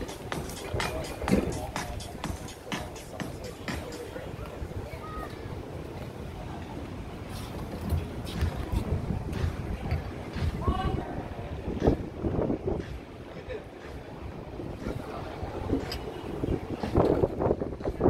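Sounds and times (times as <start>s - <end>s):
people's voices in background: 0.0s - 18.0s
wind buffeting microphone: 3.9s - 18.0s.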